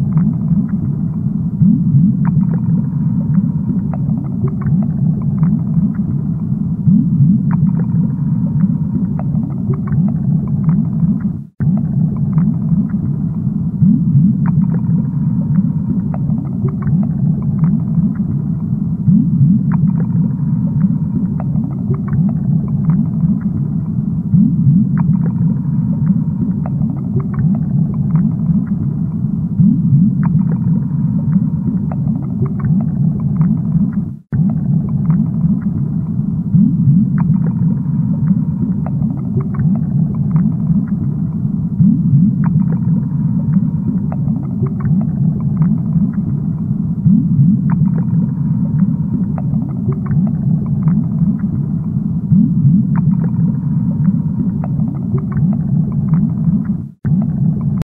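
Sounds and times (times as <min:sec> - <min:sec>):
bubbling water rumble: 0:00.0 - 0:57.8.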